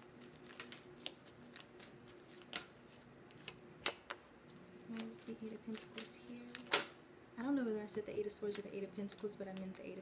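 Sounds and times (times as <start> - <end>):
cards being shuffled: 0.2 - 6.9.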